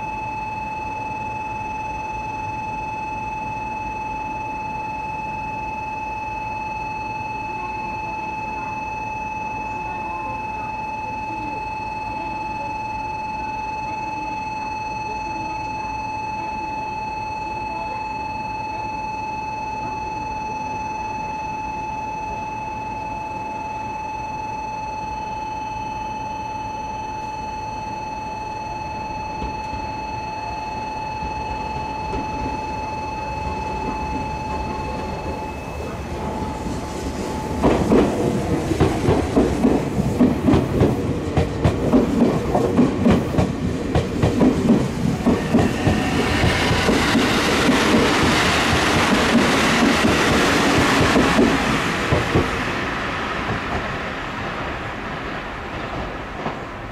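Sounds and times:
steady high tone: 0.0s - 56.9s
electric train wheels clattering: 31.2s - 56.9s.

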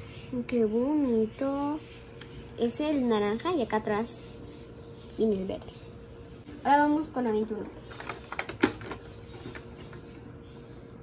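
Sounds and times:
cardboard flap clicking and crackling: 7.9s - 10.0s.

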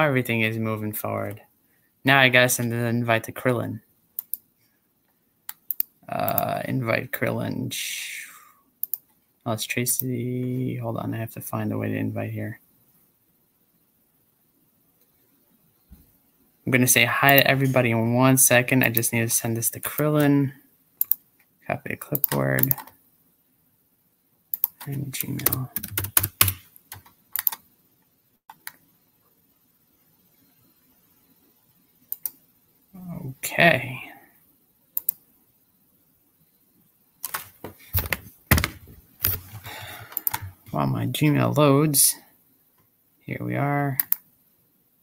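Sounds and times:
computer keyboard clicks: 5.5s - 6.4s, 8.8s - 9.1s, 21.0s - 21.2s, 22.2s - 23.0s, 24.6s - 27.6s, 37.2s - 39.4s, 40.1s - 40.5s, 44.0s - 44.3s.

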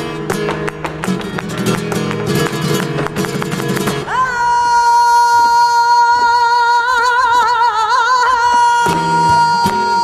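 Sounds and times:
flamenco guitar strumming chords: 0.0s - 4.4s, 8.4s - 10.0s.

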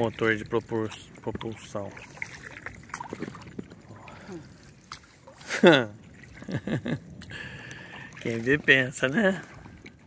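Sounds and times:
paddle dipping and dripping: 0.0s - 10.0s
small water splashes: 0.0s - 10.0s.

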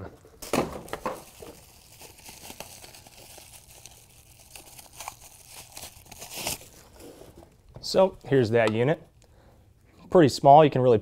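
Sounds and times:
plastic bag crinkling: 0.4s - 8.6s.

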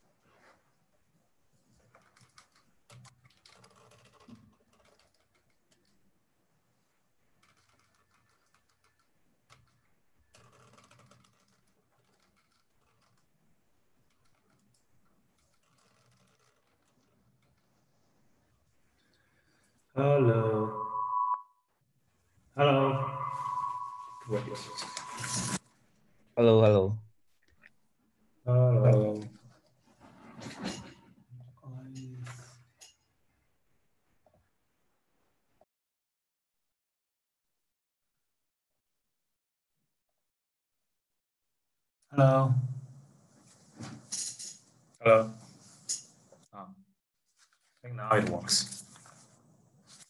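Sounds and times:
high electronic tone: 20.2s - 21.5s, 22.6s - 25.6s.

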